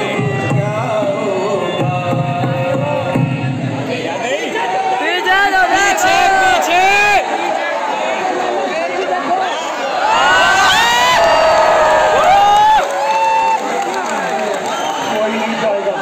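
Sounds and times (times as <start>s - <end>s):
voices from stage: 0.0s - 16.0s
audience cheering and whooping: 9.8s - 15.2s.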